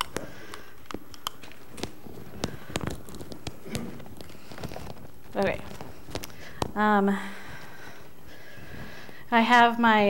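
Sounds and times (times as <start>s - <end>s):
room tone: 0.0s - 10.0s.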